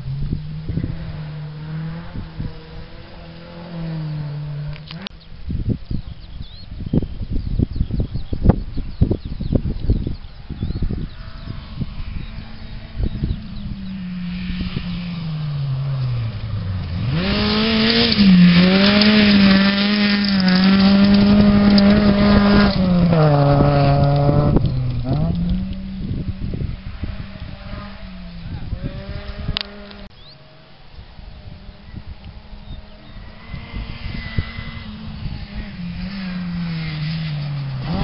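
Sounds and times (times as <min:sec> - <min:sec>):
rally car engine passing: 0:00.0 - 0:05.1, 0:10.2 - 0:38.0
wind buffeting microphone: 0:00.0 - 0:38.0.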